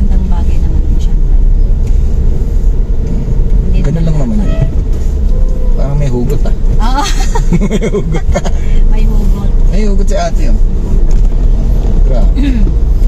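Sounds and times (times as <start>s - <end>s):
car engine and road noise: 0.0s - 13.0s.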